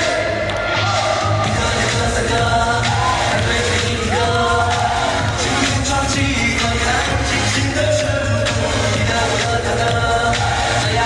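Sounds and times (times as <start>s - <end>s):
backing track with steady beat: 0.0s - 11.0s
men singing into microphones: 0.0s - 11.0s.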